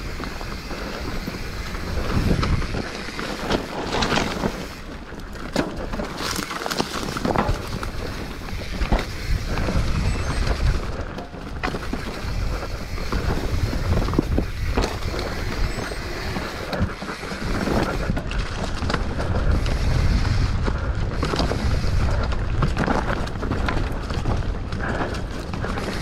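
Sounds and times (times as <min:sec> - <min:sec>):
bike knocks and rattles: 0:00.0 - 0:26.0
wind buffeting microphone: 0:00.0 - 0:26.0.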